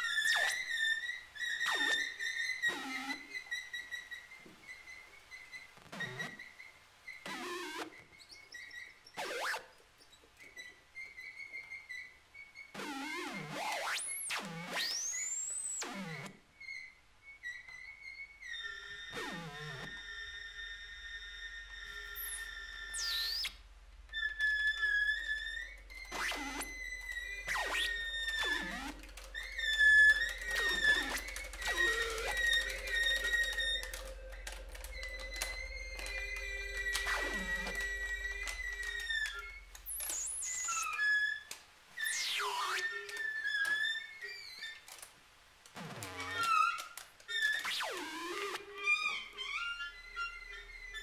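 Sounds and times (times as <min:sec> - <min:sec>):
steep downward glides: 0:21.6 - 0:40.9.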